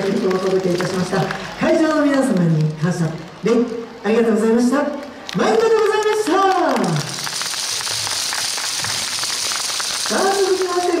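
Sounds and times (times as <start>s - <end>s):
audience applauding: 0.0s - 3.4s, 5.0s - 11.0s.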